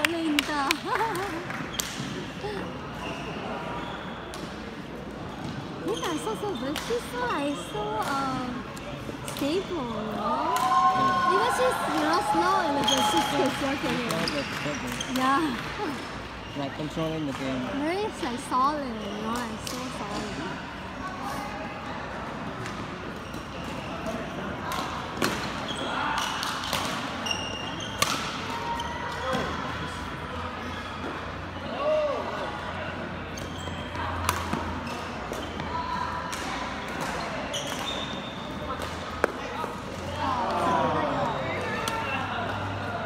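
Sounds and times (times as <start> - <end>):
voices chattering: 0.0 - 43.0.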